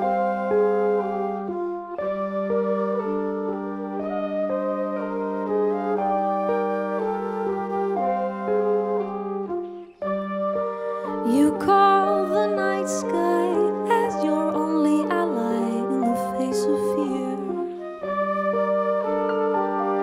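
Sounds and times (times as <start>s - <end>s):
jazz wind section chords: 0.0s - 20.0s.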